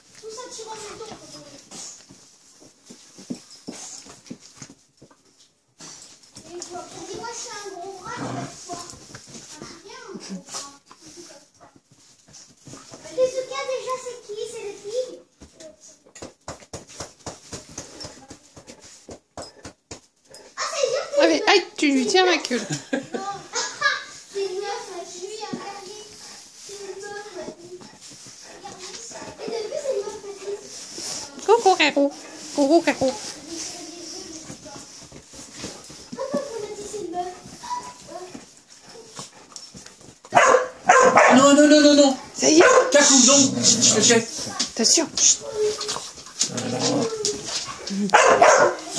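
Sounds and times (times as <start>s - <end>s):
small dogs play-fighting: 5.8s - 13.7s, 24.6s - 31.2s, 33.2s - 48.9s
pets whimpering: 45.4s - 48.2s
dog vocalizing: 45.5s - 48.8s.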